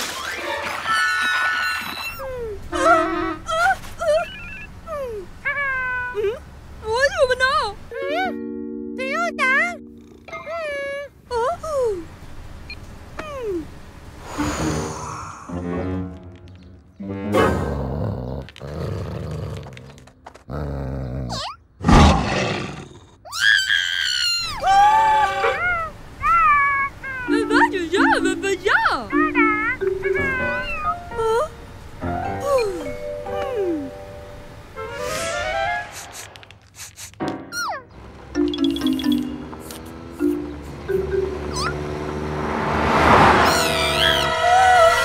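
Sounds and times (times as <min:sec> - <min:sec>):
cartoon monster growling and roaring: 0:17.3 - 0:23.3
cartoon character whimpering: 0:23.3 - 0:28.3, 0:29.1 - 0:31.6.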